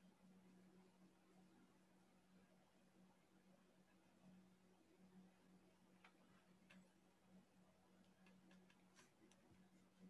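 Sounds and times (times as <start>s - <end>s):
low steady hum: 0.0s - 10.0s
faint clicks: 5.9s - 7.0s, 8.0s - 10.0s.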